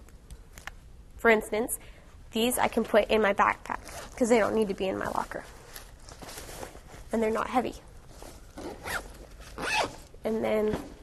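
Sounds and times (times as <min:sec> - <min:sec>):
backpack zipper pulled: 0:08.6 - 0:10.1.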